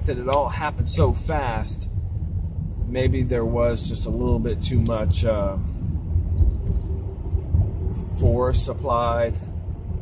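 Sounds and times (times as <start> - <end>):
car cabin rumble: 0.0 - 10.0
faint steady hum: 0.0 - 10.0.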